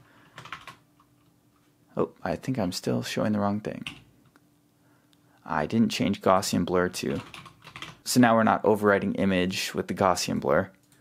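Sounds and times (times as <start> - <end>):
computer keyboard keystrokes: 0.4 - 1.3, 7.1 - 8.0.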